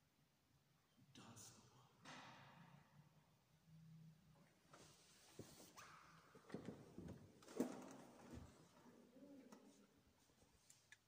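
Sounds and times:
faint footsteps and rustling: 4.4 - 11.0.

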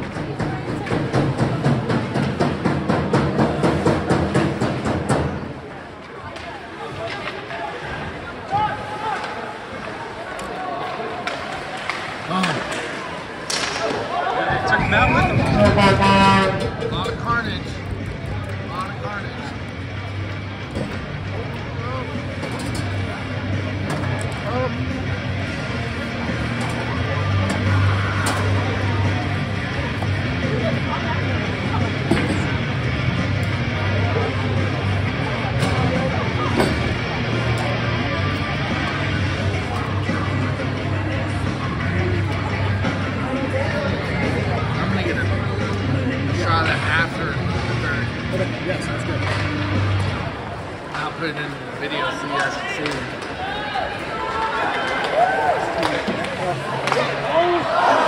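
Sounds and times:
arena crowd noise: 0.0 - 58.0
horn blaring: 14.8 - 16.8.

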